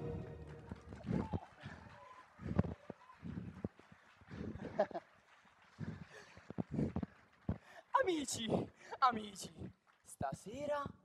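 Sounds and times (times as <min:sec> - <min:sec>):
music ending: 0:00.0 - 0:01.0.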